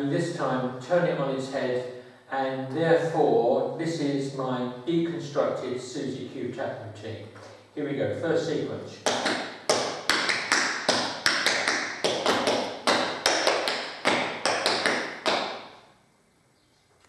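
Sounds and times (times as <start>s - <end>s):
tap shoes on tiled floor: 9.1s - 15.6s.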